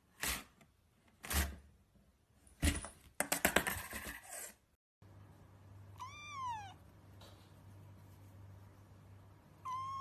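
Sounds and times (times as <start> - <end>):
kitten meowing: 6.0 - 6.8, 9.6 - 10.0.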